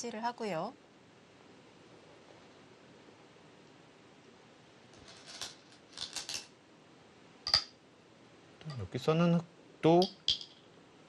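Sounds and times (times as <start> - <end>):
stones clinking in a bowl: 5.0 - 6.5, 10.0 - 10.6.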